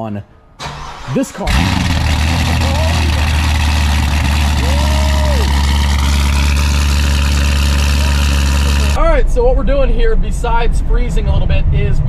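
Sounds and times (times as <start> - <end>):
car engine at high idle: 1.5 - 9.0.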